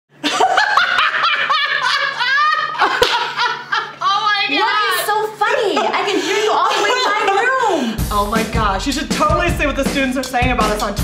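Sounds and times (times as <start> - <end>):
woman laughing hard: 0.2 - 4.2, 5.7 - 7.9.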